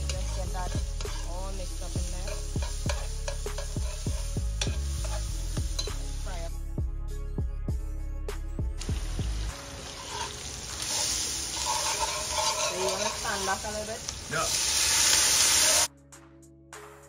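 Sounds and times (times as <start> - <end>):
hot oil sizzling in pot: 0.0 - 6.5, 8.8 - 15.9
background music: 0.0 - 17.0.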